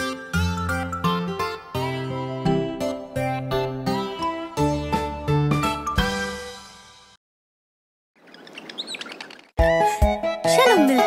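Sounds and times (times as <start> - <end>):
children's song music: 0.0 - 7.1, 9.6 - 11.0
birds chirping: 8.2 - 9.6.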